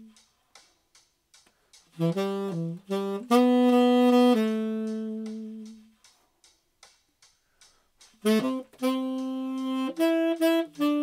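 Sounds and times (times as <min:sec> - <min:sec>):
hi-hat ticks: 0:00.0 - 0:11.0.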